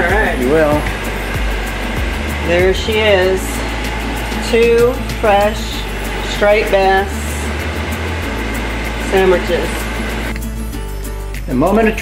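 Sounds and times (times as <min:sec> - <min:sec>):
bass line: 0:00.0 - 0:12.0.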